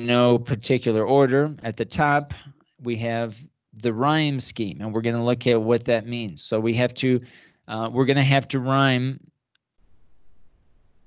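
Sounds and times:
man speaking: 0:00.0 - 0:09.2.

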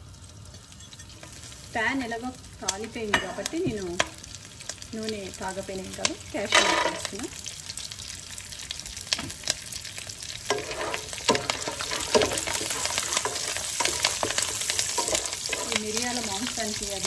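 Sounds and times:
frying sizzle with crackles: 0:00.0 - 0:17.0
wooden spatula scraping pan: 0:06.4 - 0:07.2, 0:10.5 - 0:17.0.

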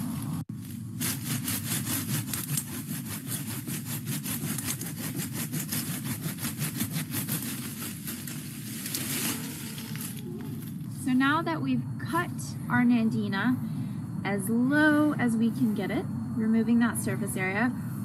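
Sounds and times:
hand saw cutting wood: 0:01.0 - 0:10.2.

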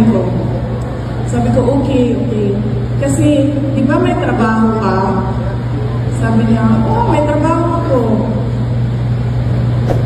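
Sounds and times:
steady low hum: 0:00.0 - 0:10.0
woman's voice: 0:01.3 - 0:05.5, 0:06.1 - 0:08.5.

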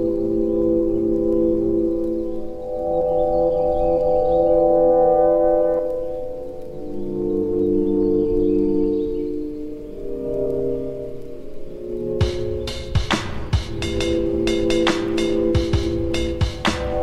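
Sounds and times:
slowed reverbed hip-hop chords: 0:05.7 - 0:17.0.

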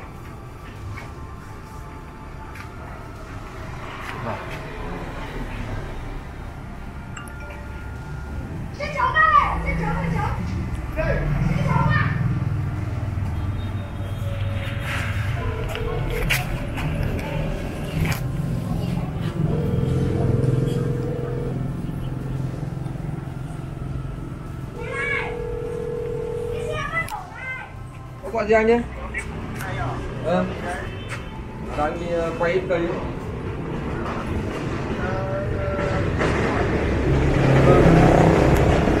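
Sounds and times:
steady mid-pitched tone: 0:06.9 - 0:09.2, 0:15.4 - 0:26.9
vehicle engine running: 0:14.5 - 0:27.1
low motor rumble: 0:15.1 - 0:27.1.

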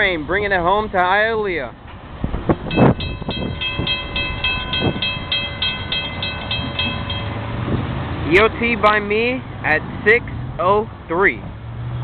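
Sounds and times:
crossing warning bell ringing: 0:02.6 - 0:07.7.

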